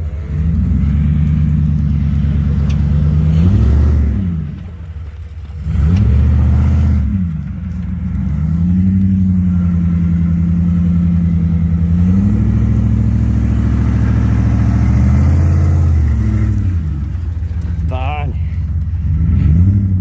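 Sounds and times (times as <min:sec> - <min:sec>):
truck engine revving: 0:00.0 - 0:20.0.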